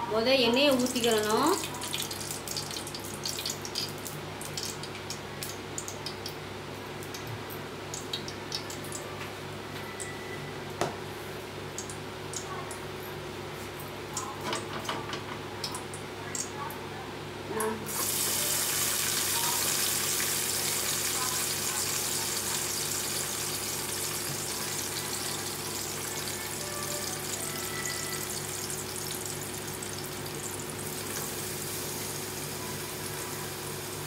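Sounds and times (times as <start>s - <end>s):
onions sizzling in hot oil: 17.9s - 34.0s.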